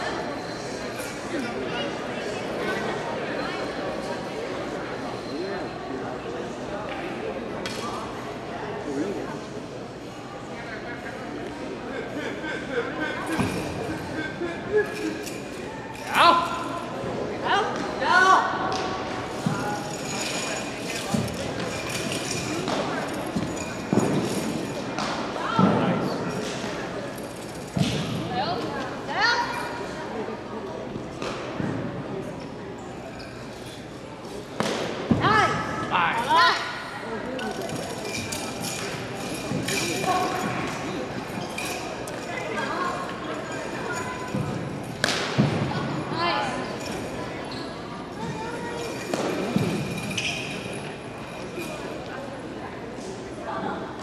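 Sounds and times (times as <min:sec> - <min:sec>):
faint voices: 0:00.0 - 0:54.0.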